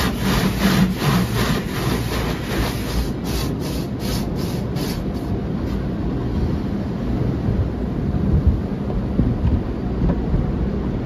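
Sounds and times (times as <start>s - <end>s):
car wash brushes swishing: 0.0s - 5.9s.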